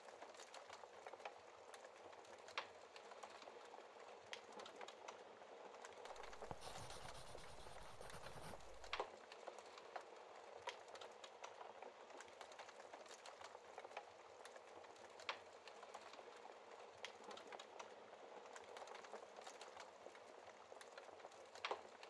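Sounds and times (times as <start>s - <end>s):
wood fire crackling: 6.2s - 9.0s.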